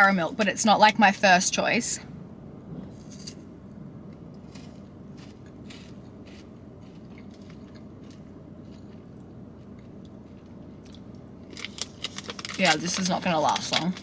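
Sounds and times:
low steady hum: 0.0s - 14.0s
chocolate wafer crunching: 4.3s - 14.0s.

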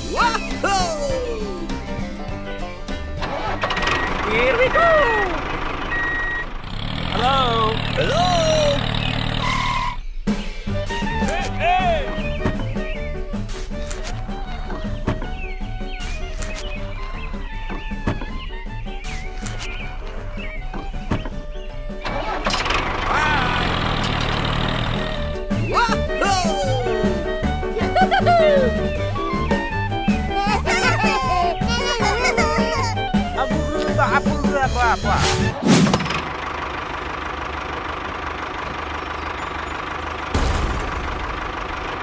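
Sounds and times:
vehicle engine running: 0.0s - 42.0s
background music with beat: 25.4s - 35.2s.

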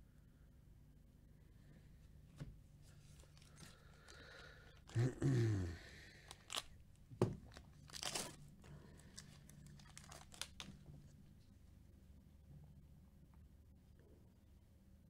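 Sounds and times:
wrapper crinkling: 6.1s - 6.8s, 7.4s - 10.9s
foil pack ripping: 6.2s - 6.7s, 7.4s - 10.8s.

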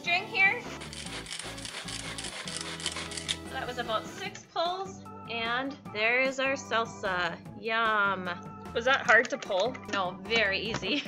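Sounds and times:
blades chopping vegetables: 0.7s - 3.4s
pull cord zipping: 0.8s - 3.4s.

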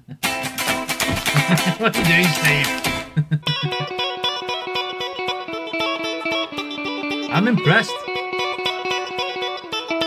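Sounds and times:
guitar played fast: 0.2s - 10.0s.

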